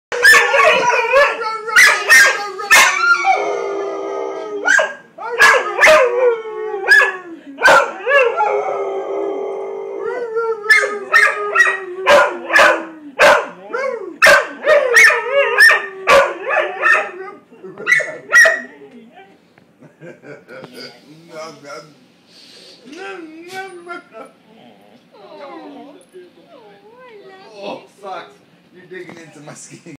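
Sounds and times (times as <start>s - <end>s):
dog barking and yelping: 0.1s - 3.4s, 4.6s - 6.2s, 6.8s - 8.5s, 10.7s - 13.6s, 14.2s - 18.8s
dog howling: 0.1s - 19.3s, 23.0s - 27.6s.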